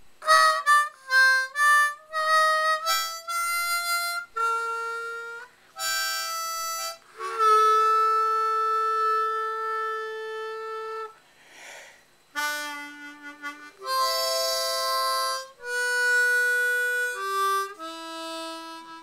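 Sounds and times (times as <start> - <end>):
harmonica melody: 0.0 - 19.0.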